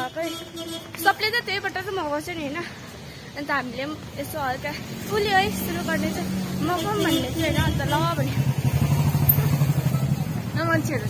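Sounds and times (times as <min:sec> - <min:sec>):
motorcycle engine passing: 0:07.4 - 0:11.0.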